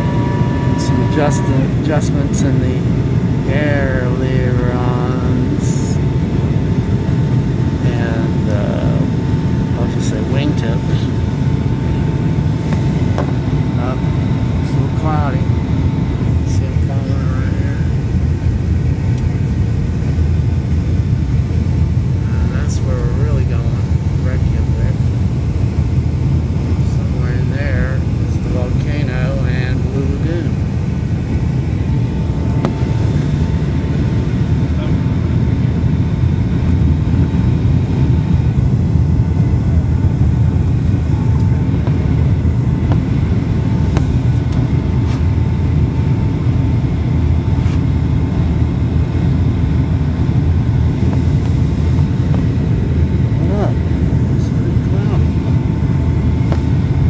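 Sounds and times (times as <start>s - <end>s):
airliner cabin roar: 0.0s - 57.0s
faint steady whine: 0.0s - 57.0s.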